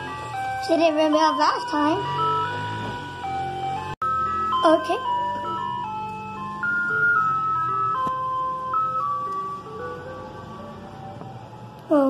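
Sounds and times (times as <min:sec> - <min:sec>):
ice cream truck chime tune: 0:00.0 - 0:12.0.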